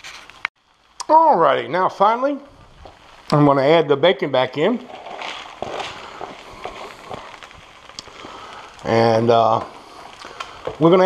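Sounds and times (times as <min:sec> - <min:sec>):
rice sizzling in a skillet: 0:00.0 - 0:11.0.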